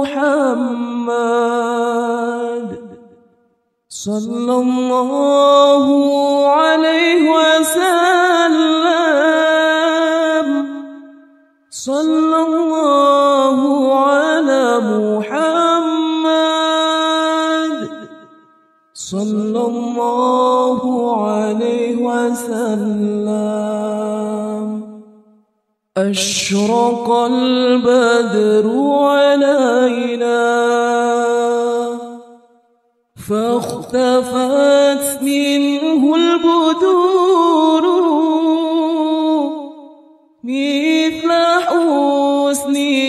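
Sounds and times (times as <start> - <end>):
solo voice chanting devotional song: 0.0 - 43.0.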